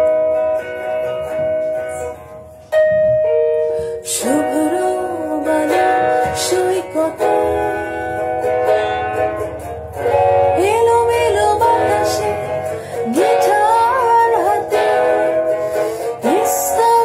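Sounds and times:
guitar accompaniment: 0:00.0 - 0:17.0
woman singing: 0:04.0 - 0:08.2, 0:10.4 - 0:17.0.

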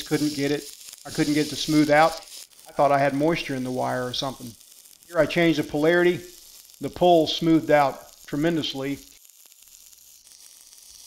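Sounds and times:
welding arc sizzling: 0:00.0 - 0:11.0.

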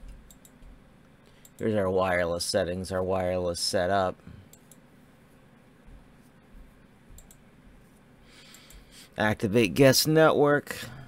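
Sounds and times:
computer mouse clicks: 0:00.0 - 0:00.7, 0:01.3 - 0:01.6, 0:04.5 - 0:04.8, 0:07.2 - 0:07.4, 0:08.4 - 0:08.8.

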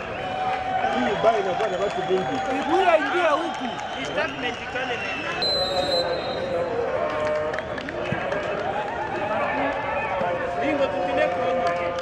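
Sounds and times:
stadium crowd chatter: 0:00.0 - 0:12.0.

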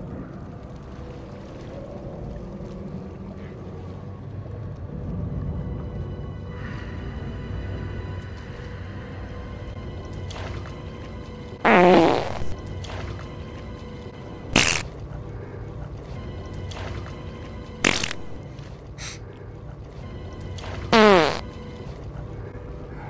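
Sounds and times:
dark film music: 0:00.0 - 0:23.0.

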